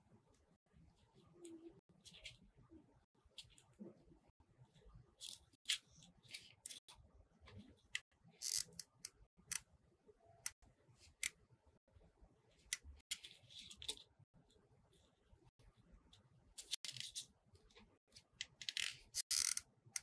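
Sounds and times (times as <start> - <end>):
small clicks of crafting work: 5.2 - 9.8, 12.6 - 14.7, 15.5 - 20.0.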